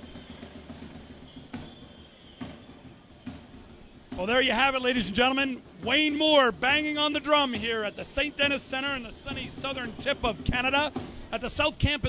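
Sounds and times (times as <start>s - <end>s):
drum beats: 0.0s - 12.0s.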